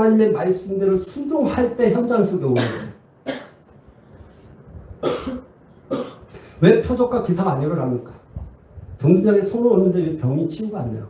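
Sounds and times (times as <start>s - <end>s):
man coughing: 2.6s - 3.6s, 5.0s - 6.4s.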